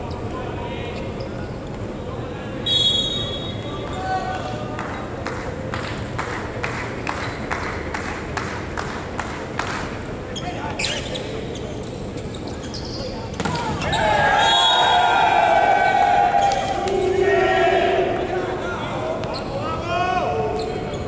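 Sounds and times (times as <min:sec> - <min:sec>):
volleyball hits: 0:13.3 - 0:14.6
players shouting: 0:13.3 - 0:21.0.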